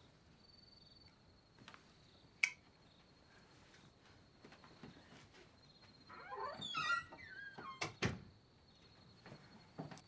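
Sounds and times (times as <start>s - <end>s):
door creaking open: 6.0s - 8.3s.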